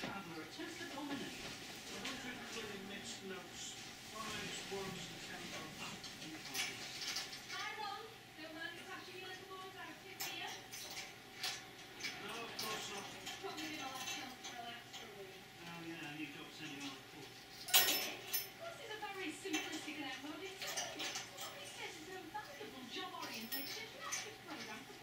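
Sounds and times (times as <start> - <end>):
clicks and clatter of bell: 23.2 - 24.2.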